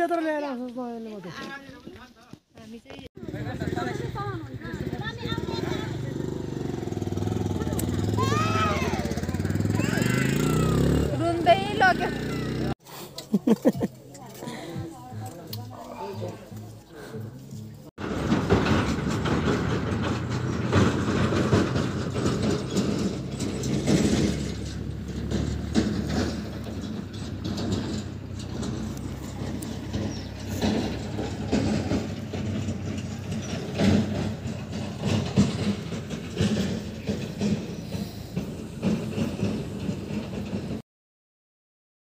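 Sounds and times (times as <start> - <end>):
vehicle engine humming: 3.2 - 12.8, 14.5 - 40.8
rattling and clatter: 18.0 - 40.8.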